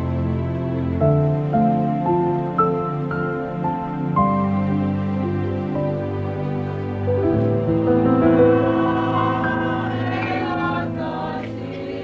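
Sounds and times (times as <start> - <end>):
choir singing in harmony: 7.3 - 12.0.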